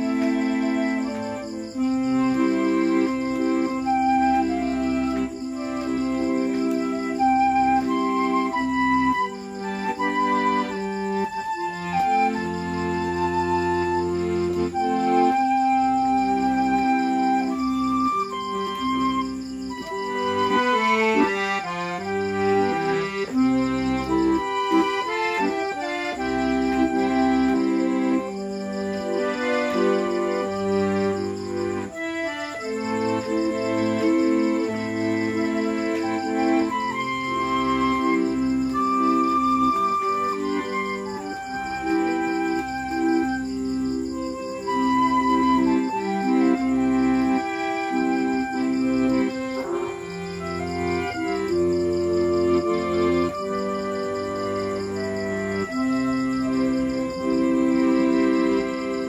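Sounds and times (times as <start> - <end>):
bamboo flute melody: 0.0 - 59.0
piano accordion: 0.0 - 59.0.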